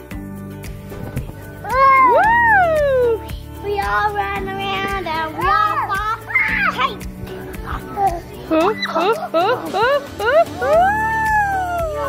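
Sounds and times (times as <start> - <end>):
background music: 0.0 - 12.0
child squealing: 1.7 - 3.2.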